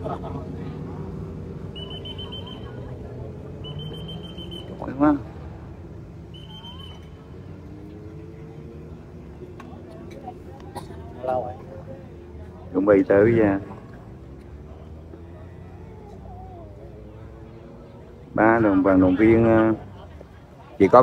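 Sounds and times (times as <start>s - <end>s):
murmur of crowd: 0.0s - 21.0s
traffic: 0.0s - 21.0s
whistle blasts: 1.7s - 2.9s, 3.6s - 4.9s, 6.2s - 7.3s.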